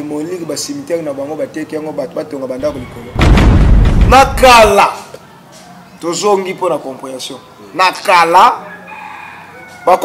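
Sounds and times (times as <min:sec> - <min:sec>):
man talking: 0:00.0 - 0:03.2, 0:04.0 - 0:05.1
loud distorted rush of noise: 0:02.7 - 0:04.8.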